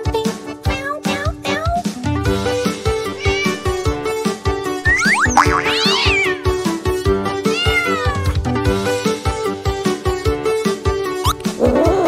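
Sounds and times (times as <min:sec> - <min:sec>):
upbeat children's music: 0:00.0 - 0:11.6
cartoon cat meowing: 0:03.1 - 0:04.2, 0:04.8 - 0:06.6, 0:07.4 - 0:08.4.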